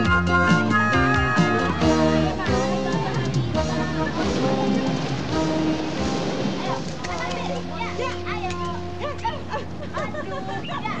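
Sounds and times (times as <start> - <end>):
soundtrack music: 0.0 - 9.2
voices calling and chattering: 0.7 - 11.0.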